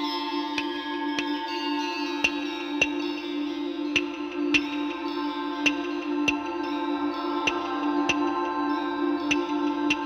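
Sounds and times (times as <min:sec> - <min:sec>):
ambient drone music: 0:00.0 - 0:10.0.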